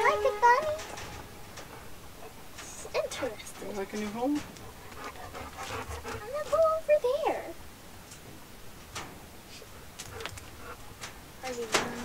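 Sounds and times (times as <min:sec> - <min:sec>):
dog panting: 0:00.0 - 0:07.2, 0:09.6 - 0:11.0.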